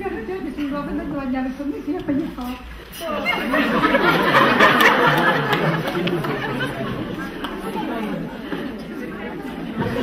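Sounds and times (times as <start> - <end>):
chatter of voices in a hall: 0.0 - 10.0.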